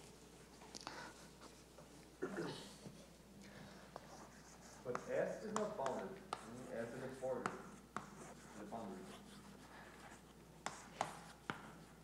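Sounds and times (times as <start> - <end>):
chalk writing on blackboard: 3.8 - 12.0
chalk tapping board: 4.0 - 9.2, 10.6 - 11.9.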